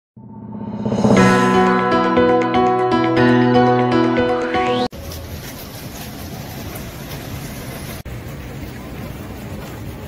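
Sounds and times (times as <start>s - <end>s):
low street rumble: 4.9s - 10.0s.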